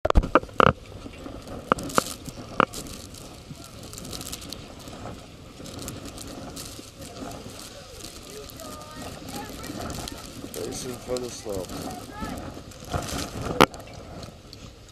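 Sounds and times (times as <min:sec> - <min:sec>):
wind buffeting microphone: 0:00.0 - 0:14.9
faint voices talking: 0:01.7 - 0:14.8.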